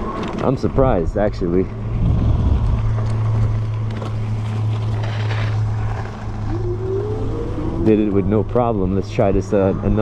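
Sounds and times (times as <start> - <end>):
low motor hum: 1.6 - 10.0
rising whine: 1.8 - 9.0
wind on microphone: 1.9 - 3.6, 6.2 - 8.4
tyres rolling over dirt: 2.8 - 6.8.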